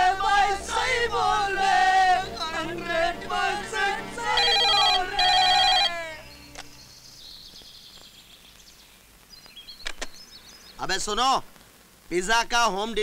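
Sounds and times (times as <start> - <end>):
person singing a song: 0.0 - 6.7
faint room noise: 0.0 - 13.0
telephone ringing: 4.2 - 6.1.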